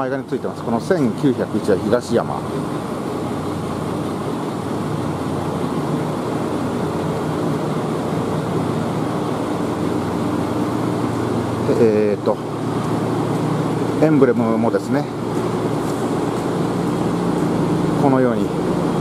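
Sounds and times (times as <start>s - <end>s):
road traffic: 0.0s - 19.0s
tram equipment humming: 0.0s - 19.0s.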